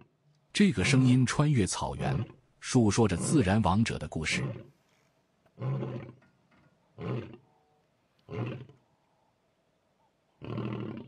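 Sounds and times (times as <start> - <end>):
lion roaring: 0.7 - 1.2, 1.9 - 4.7, 5.6 - 6.2, 7.0 - 7.4, 8.3 - 8.8, 10.4 - 11.0.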